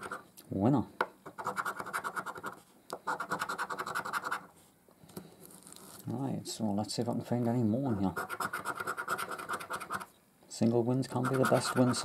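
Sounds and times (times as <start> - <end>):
coin scraping scratch card: 1.3 - 4.5, 8.2 - 10.1, 11.1 - 12.0.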